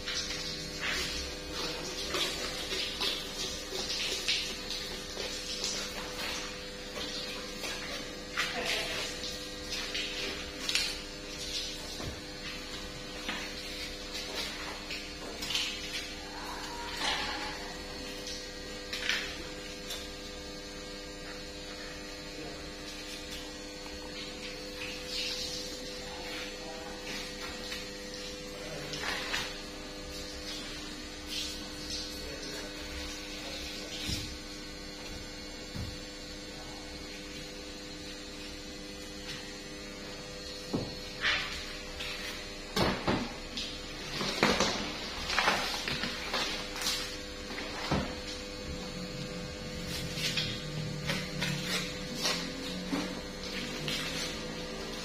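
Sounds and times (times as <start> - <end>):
electrical hum: 0.0 - 55.0.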